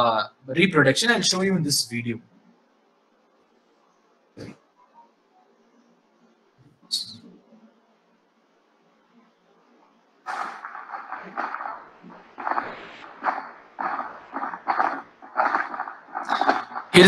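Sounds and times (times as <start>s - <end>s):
frogs calling: 10.3s - 17.0s.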